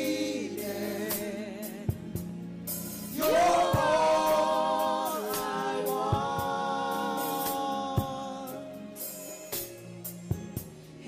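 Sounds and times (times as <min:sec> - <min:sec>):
singers singing gospel in harmony: 0:00.0 - 0:09.6.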